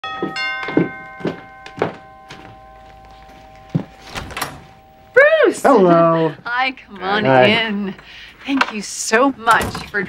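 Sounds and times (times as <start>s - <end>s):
footsteps on hardwood floor: 0.0s - 4.8s
two-note doorbell chime: 0.0s - 5.9s.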